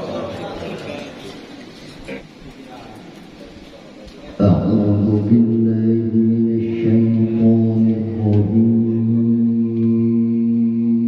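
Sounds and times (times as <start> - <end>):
man chanting recitation: 4.2 - 11.0.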